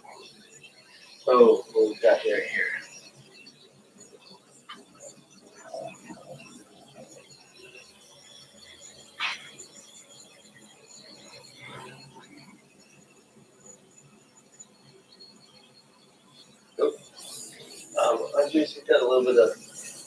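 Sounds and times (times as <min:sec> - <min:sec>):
gas torch hissing: 0:16.8 - 0:20.0.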